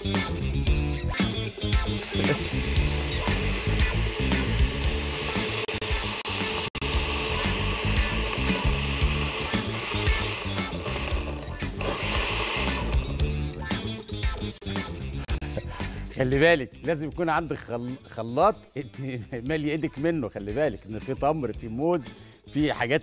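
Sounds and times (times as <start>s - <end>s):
background music: 0.0s - 23.0s
blender motor running: 1.4s - 13.5s.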